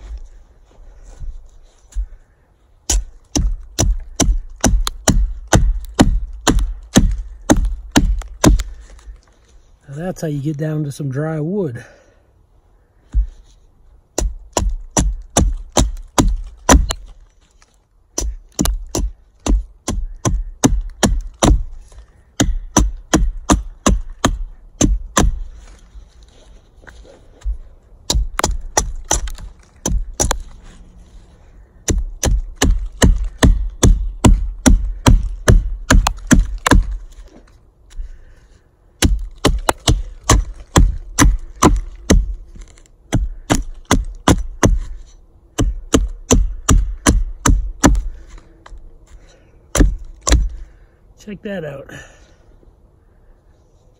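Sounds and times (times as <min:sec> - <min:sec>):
hatchet chopping wood: 0:02.8 - 0:09.0, 0:14.2 - 0:17.2, 0:18.1 - 0:25.6, 0:27.4 - 0:30.6, 0:31.8 - 0:37.2, 0:39.0 - 0:50.6.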